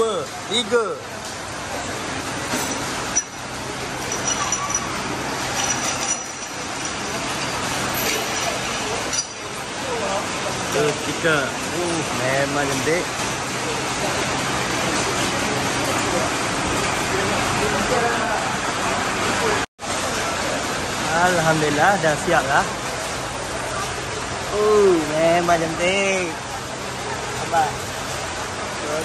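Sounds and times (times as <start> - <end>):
faint voices: 0.0 - 29.0
workshop background hiss: 0.0 - 29.0.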